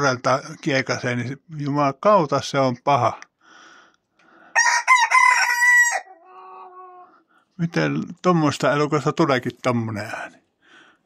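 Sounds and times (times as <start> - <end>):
rooster crowing: 4.5 - 7.1.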